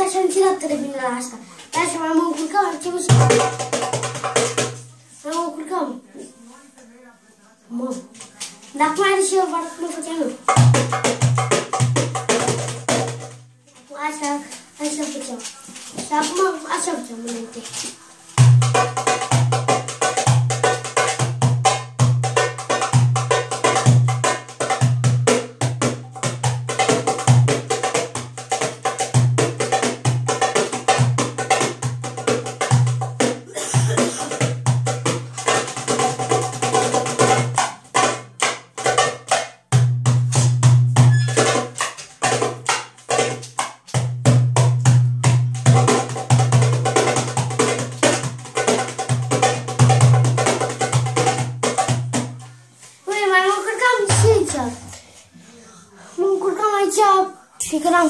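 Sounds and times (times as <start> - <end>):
hand drum playing fast rhythms: 1.8 - 4.9, 10.4 - 13.5, 18.4 - 52.4, 53.8 - 54.9.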